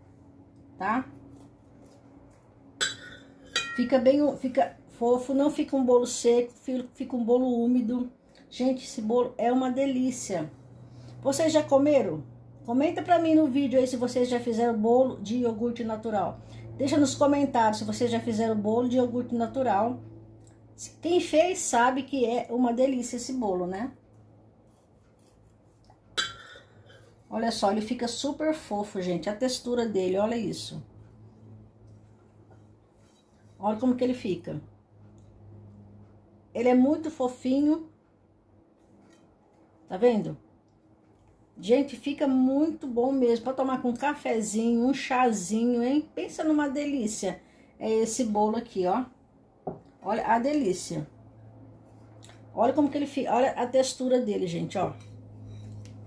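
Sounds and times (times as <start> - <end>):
faint steady hum: 0.0 - 56.0
knife clinking against plate: 2.8 - 3.9, 26.2 - 27.0.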